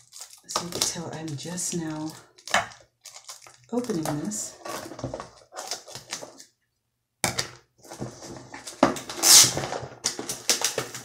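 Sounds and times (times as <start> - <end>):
packaging rustling: 0.0 - 6.6, 7.9 - 11.0.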